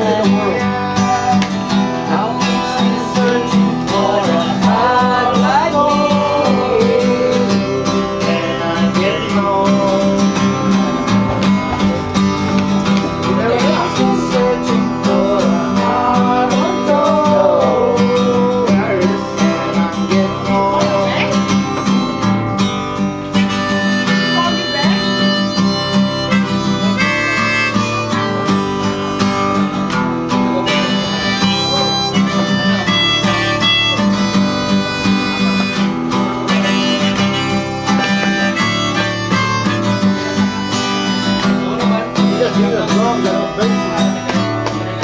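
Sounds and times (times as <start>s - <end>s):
harmonica melody: 0.0s - 45.0s
strummed acoustic guitar: 0.0s - 45.0s.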